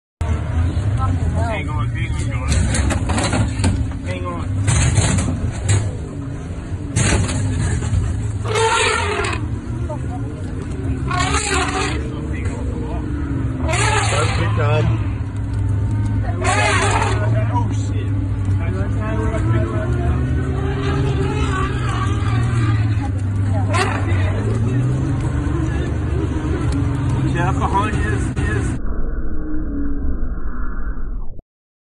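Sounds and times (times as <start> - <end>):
vehicle engine low rumble: 0.2 - 31.3
murmured voices: 8.4 - 28.7.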